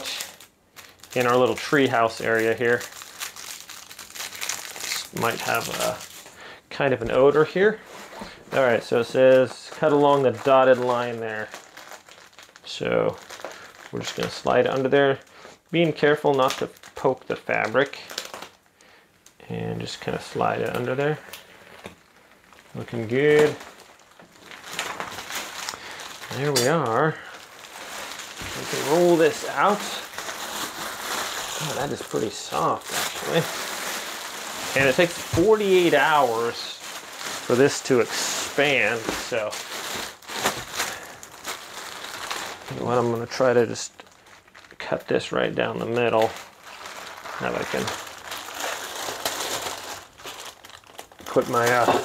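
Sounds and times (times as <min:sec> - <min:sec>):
plastic wrapping crinkling: 0:00.0 - 0:52.0.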